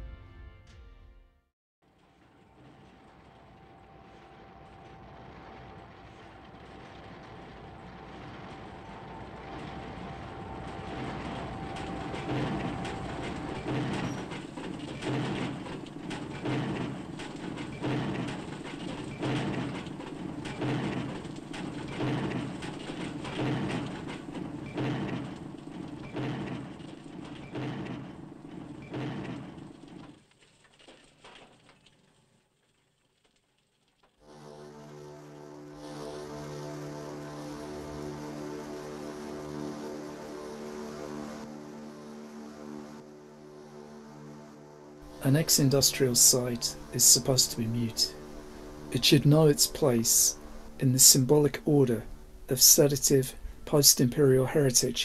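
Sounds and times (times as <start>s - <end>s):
rumbling noise: 1.9s - 31.8s, 34.3s - 55.0s
heavy regular pounding: 45.0s - 54.5s.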